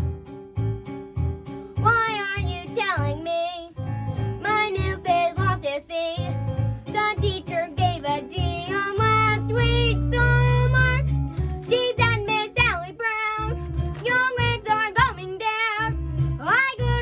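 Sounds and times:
backing track with bass beat: 0.0 - 17.0
girl singing: 1.8 - 17.0.

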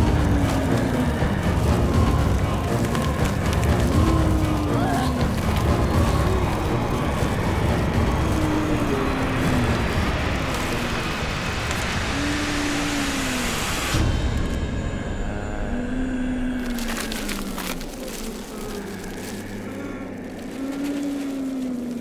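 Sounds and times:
dark low rumble: 0.0 - 22.0.

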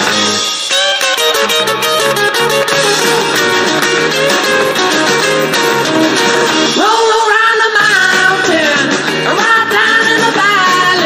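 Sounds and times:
rock guitars playing: 0.0 - 11.0.

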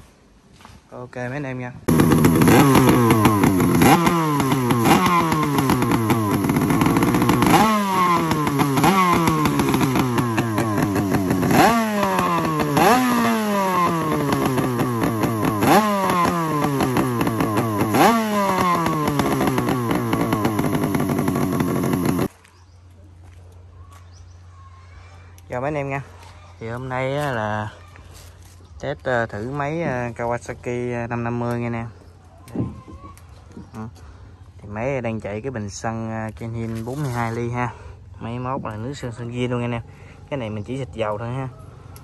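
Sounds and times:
two-stroke engine revving: 1.8 - 22.3.

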